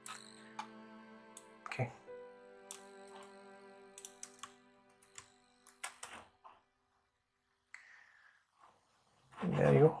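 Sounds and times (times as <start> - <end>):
faint background music: 0.0 - 6.9.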